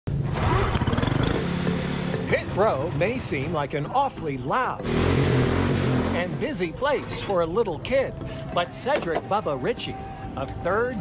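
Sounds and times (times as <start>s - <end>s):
small race car engine revving: 0.2s - 2.3s, 4.8s - 6.4s.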